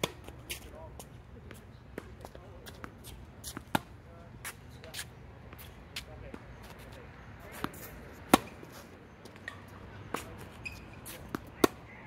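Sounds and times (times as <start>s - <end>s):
racket hitting tennis ball: 0.0s - 0.6s, 1.9s - 5.0s, 7.5s - 11.9s
tennis ball bouncing: 0.0s - 0.6s, 1.9s - 12.0s.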